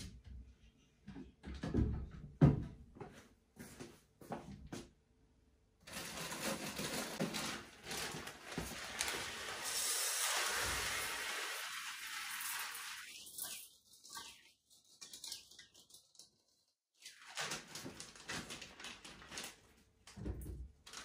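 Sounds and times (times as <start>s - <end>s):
plastic packaging rustling: 5.8s - 9.8s, 17.0s - 19.9s
food poured into steel pot: 7.0s - 14.4s.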